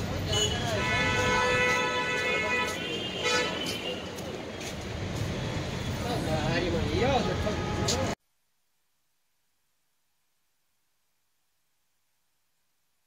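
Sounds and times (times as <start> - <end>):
street traffic rumble: 0.0 - 8.2
vehicle horn blasts: 0.3 - 4.0.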